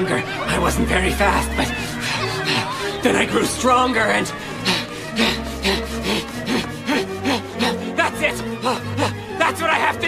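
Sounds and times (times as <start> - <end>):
cartoon character panting: 4.6 - 8.0.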